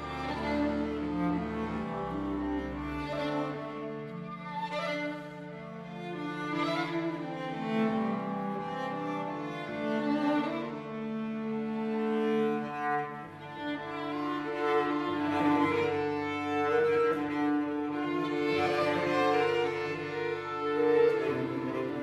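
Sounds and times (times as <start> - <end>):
chamber ensemble with cello and violin: 0.0 - 22.0.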